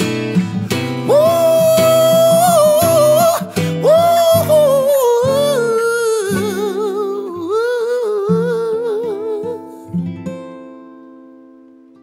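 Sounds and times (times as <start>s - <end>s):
plucked acoustic guitar: 0.0s - 12.0s
man humming: 1.1s - 9.8s.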